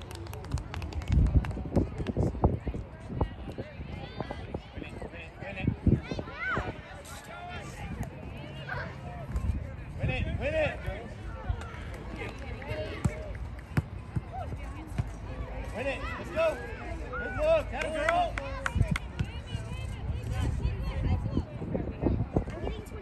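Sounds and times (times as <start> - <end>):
people calling and talking: 0.0 - 23.0.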